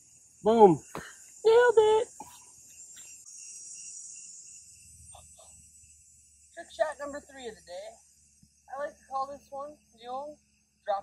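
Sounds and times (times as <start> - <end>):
crickets chirping: 0.0 - 11.0
insects chorus: 0.0 - 11.0.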